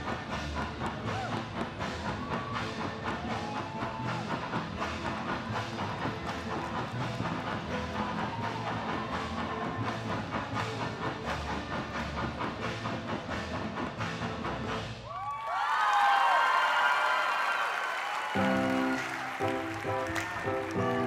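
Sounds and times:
dance music: 0.0 - 14.8, 18.2 - 21.0
audience cheering and whooping: 1.0 - 5.8, 7.6 - 9.9, 15.0 - 21.0.

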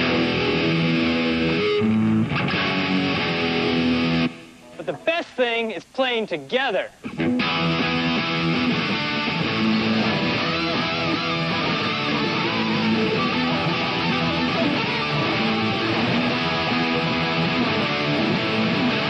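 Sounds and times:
electric guitars playing rock: 0.0 - 5.1, 7.0 - 19.0.

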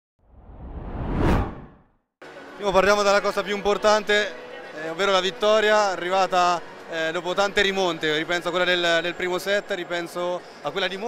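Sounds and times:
whoosh sound effect: 0.3 - 1.9.

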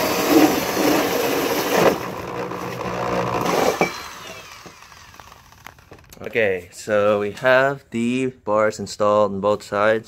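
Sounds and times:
electric drill with hole saw: 0.0 - 6.1.

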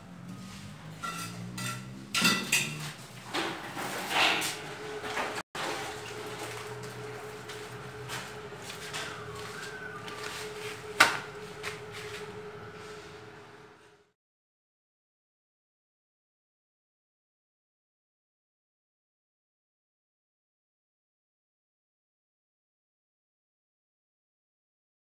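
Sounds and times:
trowel scraping and knocking on bricks: 0.6 - 4.6.

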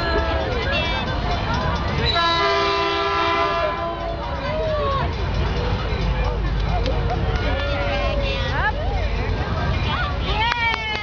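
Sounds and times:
locomotive air horn blast: 2.1 - 4.2.

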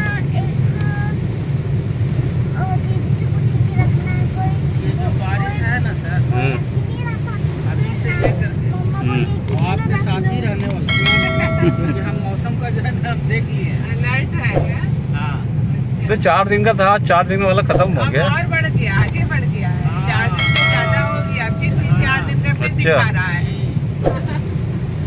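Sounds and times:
rain on windshield: 0.0 - 10.9
engine and tyres rumbling: 0.0 - 25.0
steady pitched tone: 10.9 - 12.6, 20.1 - 22.7.

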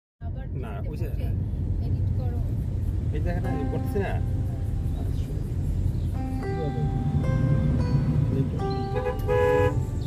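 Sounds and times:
road traffic rumble: 0.2 - 10.0
vehicle horn honking: 8.6 - 10.0.

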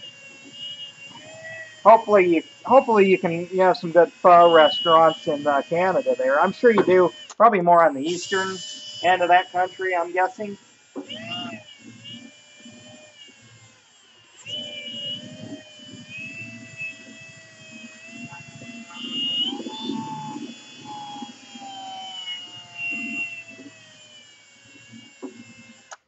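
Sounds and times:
cordless drill motor whine: 0.0 - 26.0.

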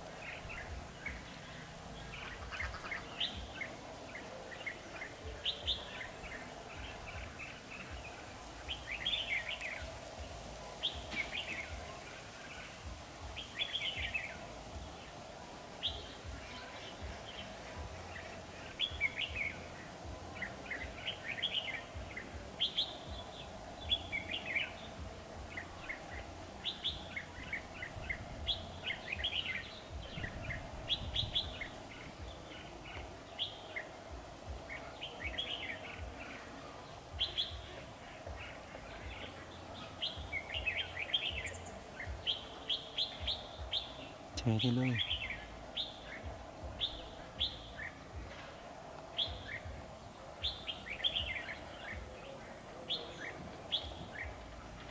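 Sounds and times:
birds singing chirpy phrases: 15.8 - 48.2.

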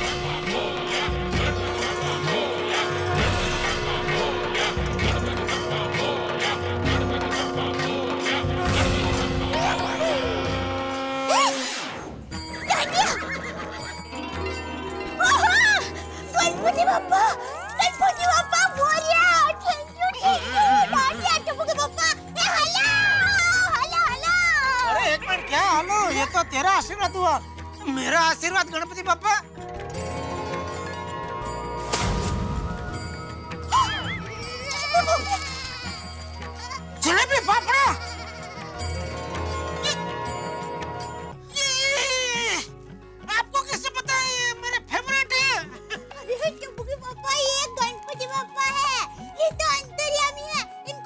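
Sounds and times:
sitcom background music: 0.0 - 51.0
whinny-like comic sound effect: 11.3 - 11.9.

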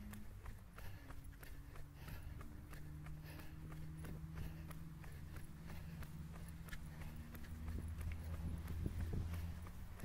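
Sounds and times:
low steady hum: 0.0 - 10.0
running footsteps on asphalt: 0.0 - 10.0.

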